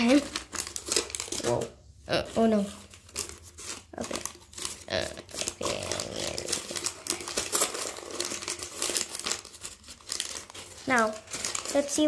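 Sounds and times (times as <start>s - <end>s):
foil packet crinkling: 0.0s - 12.0s.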